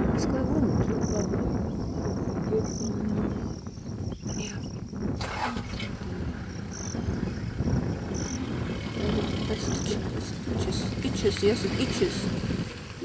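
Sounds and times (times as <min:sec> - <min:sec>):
vehicle engine idling: 0:05.1 - 0:13.0.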